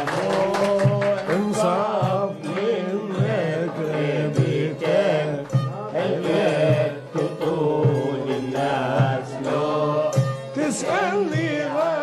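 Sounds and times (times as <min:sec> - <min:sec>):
santur and spike fiddle ensemble: 0:00.0 - 0:12.0.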